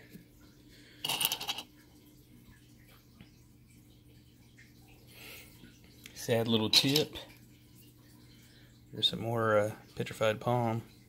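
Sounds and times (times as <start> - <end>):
small stones clattering in a bowl: 1.0 - 1.7.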